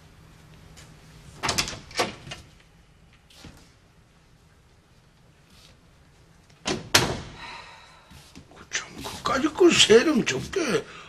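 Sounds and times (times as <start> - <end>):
door shutting and latching: 1.4 - 2.5, 6.6 - 7.4.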